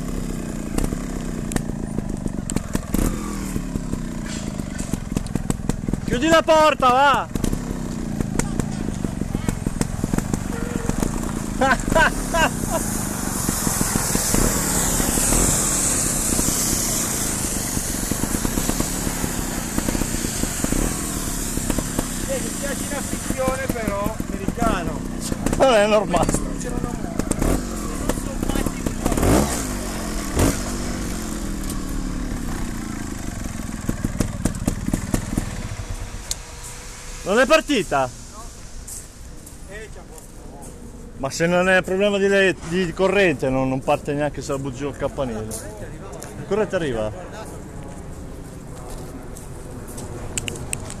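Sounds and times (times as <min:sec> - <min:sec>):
engine whir falling in pitch: 0:00.0 - 0:42.9.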